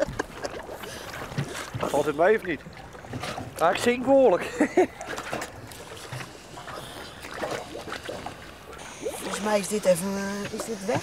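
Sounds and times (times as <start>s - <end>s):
water sloshing and splashing: 0.0s - 11.0s.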